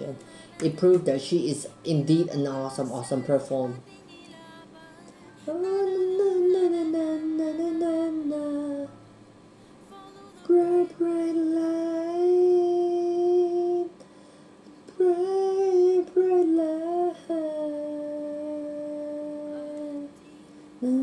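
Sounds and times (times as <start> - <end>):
person singing long notes: 0.0 - 9.0, 9.9 - 14.0, 14.9 - 21.0.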